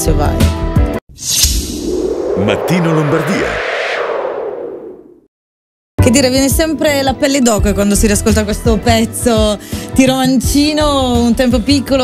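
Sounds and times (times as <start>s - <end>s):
whooshing sound effect with echo: 1.1s - 5.3s.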